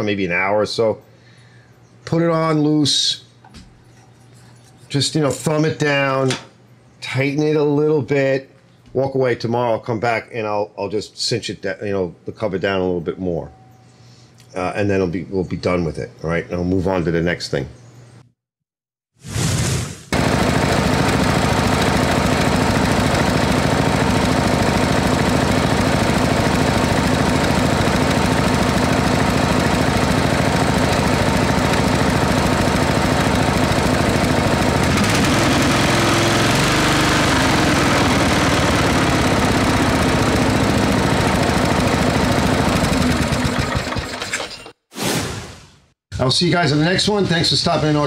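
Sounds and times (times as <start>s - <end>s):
lawn tractor engine running: 20.2s - 44.7s.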